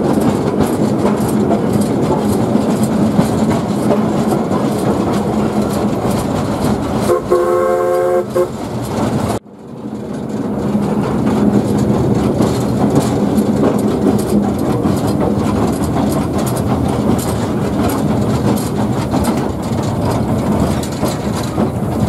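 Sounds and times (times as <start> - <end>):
steam locomotive running: 0.0 - 22.0
steam locomotive whistle: 7.0 - 8.6.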